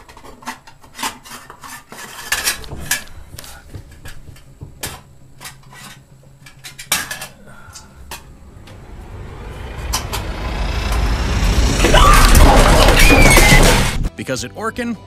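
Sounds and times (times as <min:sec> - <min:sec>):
rushing noise with low rumble: 0:07.9 - 0:14.1.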